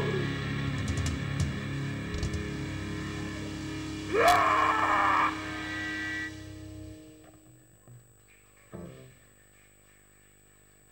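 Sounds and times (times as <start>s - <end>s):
electric guitars and bass chord: 0.0s - 8.0s
high-pitched feedback squeal: 2.5s - 7.3s.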